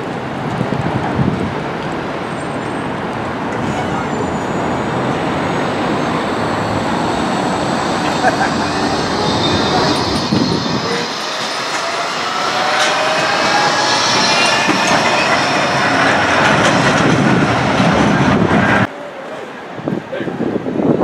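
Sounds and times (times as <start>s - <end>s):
tram wheels rumbling on rails: 0.0s - 18.9s
street noise: 0.0s - 21.0s
tram motor whine: 2.8s - 18.9s.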